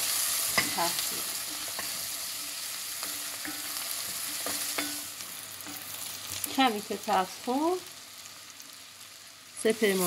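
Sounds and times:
vegetables sizzling in a pot: 0.0s - 10.0s.

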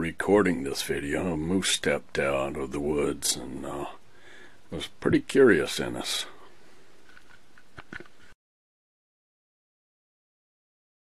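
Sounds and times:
faint outdoor ambience: 0.0s - 8.4s.

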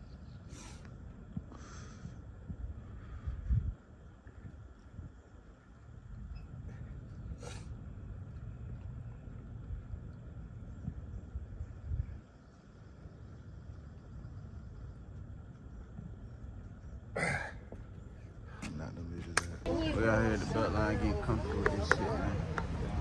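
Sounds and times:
wind rumble on microphone: 0.0s - 17.8s.

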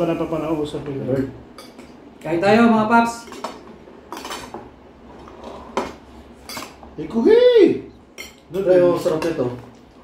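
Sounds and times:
spoons clinking on dishes: 8.1s - 9.5s.

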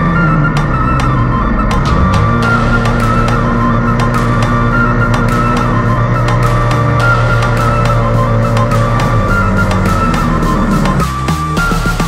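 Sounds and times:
loud music with steady beat: 0.0s - 12.0s
motorcycle running: 0.0s - 12.0s.

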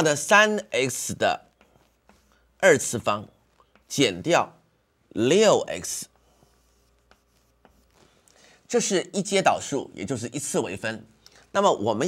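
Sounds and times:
chalk writing on blackboard: 1.0s - 3.0s, 5.8s - 8.2s.

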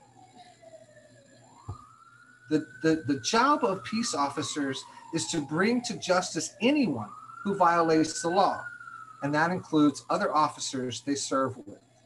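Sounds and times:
faint emergency vehicle siren: 0.0s - 12.0s.

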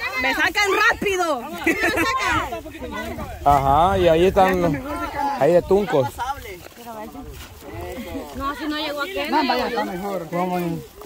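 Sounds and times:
people talking in background: 0.0s - 11.0s.

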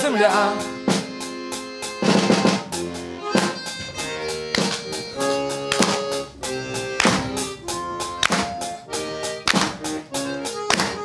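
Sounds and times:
accordion playing: 0.0s - 11.0s
percussive hits: 3.3s - 11.0s.

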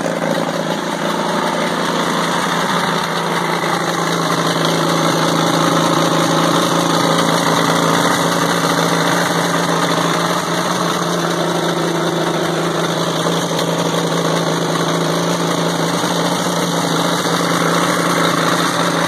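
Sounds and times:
diesel engine idling: 0.0s - 19.0s.

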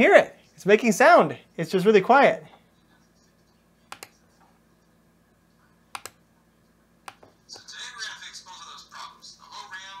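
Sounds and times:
faint steady background noise: 0.0s - 10.0s
computer key clicks: 3.9s - 4.1s, 5.9s - 6.2s.

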